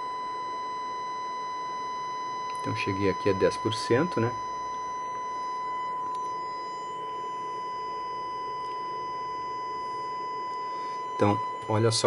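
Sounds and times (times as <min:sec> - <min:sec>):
distorted amplifier test tone: 0:00.0 - 0:12.0.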